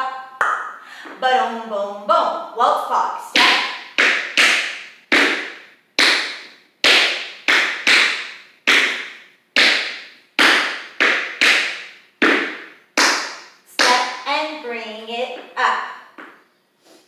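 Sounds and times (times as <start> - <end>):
tap shoes on wooden floor: 3.4 - 14.2.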